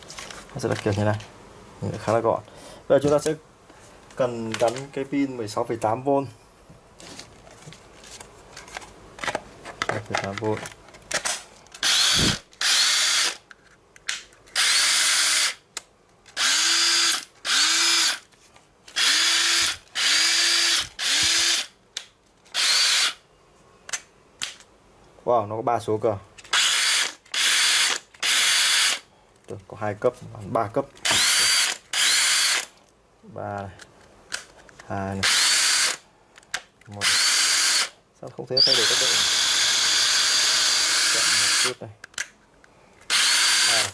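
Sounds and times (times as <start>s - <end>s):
drill motor whining: 11.8s - 13.4s, 14.6s - 15.6s, 16.4s - 18.2s, 19.0s - 21.7s, 22.6s - 23.2s, 26.5s - 29.0s, 31.0s - 32.7s, 35.2s - 36.0s, 37.0s - 37.9s, 38.6s - 41.8s, 43.1s - 43.9s.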